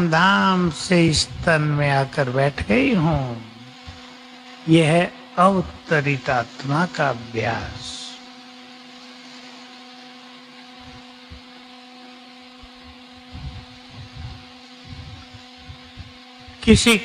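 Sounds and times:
low hum with faint hiss: 0.0s - 8.3s, 10.0s - 17.0s
soft low thumps: 12.8s - 16.2s.

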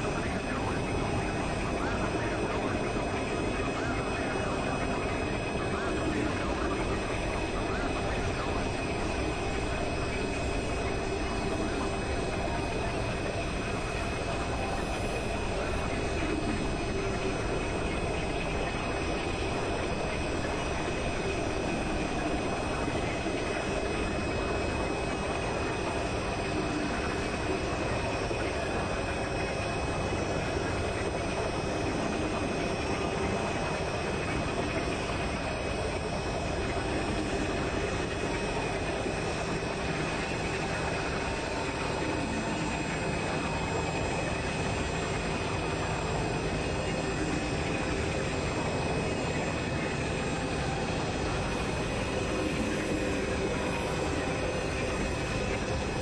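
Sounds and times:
synthesizer noise drone: 0.0s - 56.0s.

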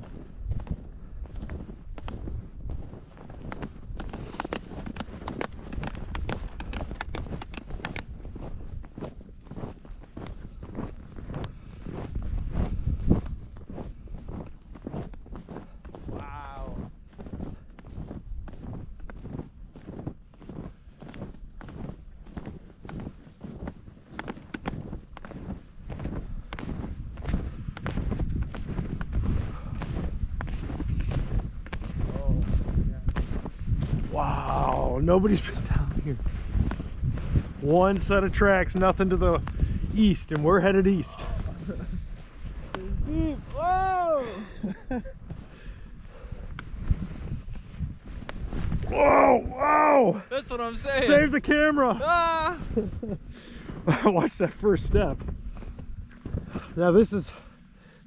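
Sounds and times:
snowshoes crunching through snow: 0.0s - 58.0s
wind rumble on microphone: 0.0s - 58.0s.

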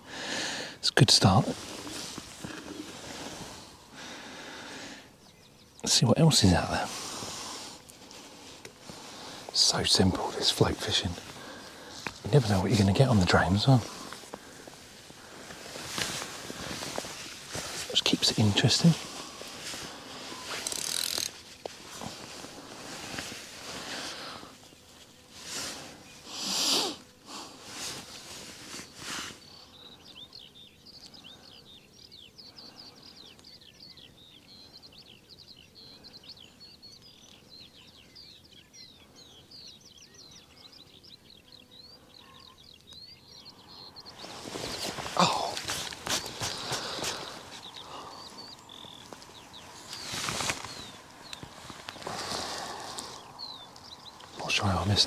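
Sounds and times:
birds chirping: 0.0s - 55.0s
fishing reel handling noise: 20.5s - 21.4s.

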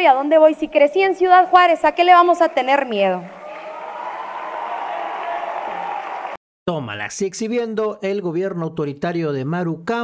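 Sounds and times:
audience applauding and cheering: 1.1s - 6.4s.

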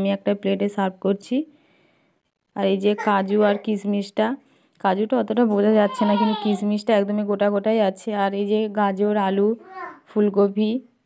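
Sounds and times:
woman talking: 0.0s - 1.5s, 2.6s - 10.9s.

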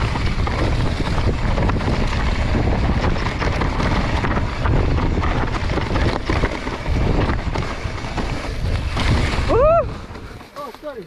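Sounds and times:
mountain bike rattling on trail: 0.0s - 11.0s
wind buffeting microphone: 0.0s - 11.0s.

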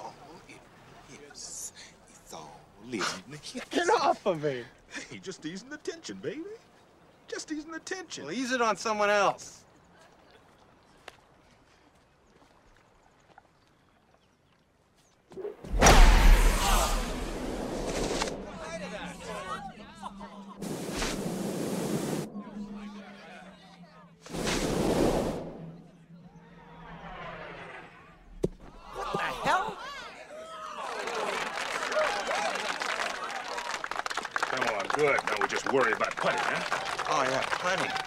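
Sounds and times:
rushing whooshes: 15.6s - 19.2s, 24.2s - 26.0s
voices shouting: 26.2s - 33.8s.

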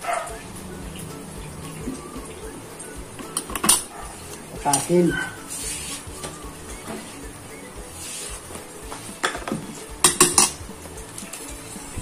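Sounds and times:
metal spoons clinking on a steel pan: 9.2s - 10.6s.

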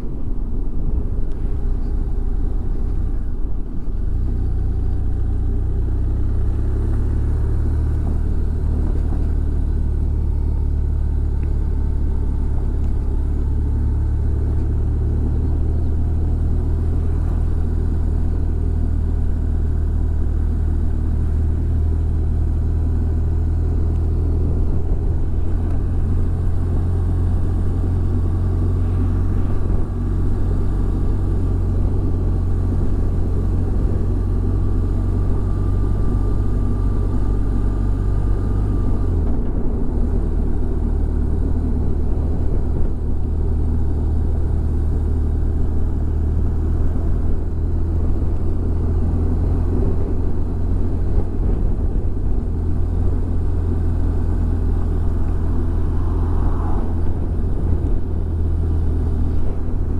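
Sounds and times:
motorcycle engine drone: 0.0s - 59.9s
wind and road noise: 0.0s - 59.9s.

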